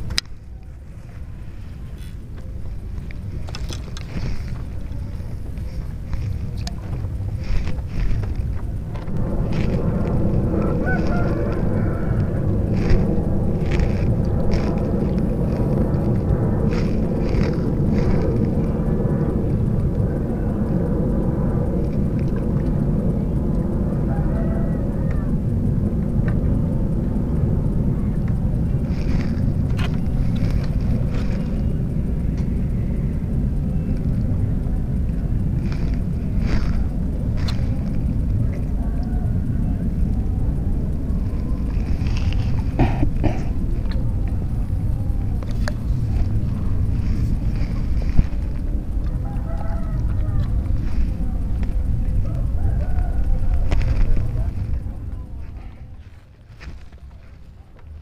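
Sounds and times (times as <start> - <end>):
engine droning: 0.0 - 58.0
low rumble: 0.0 - 58.0.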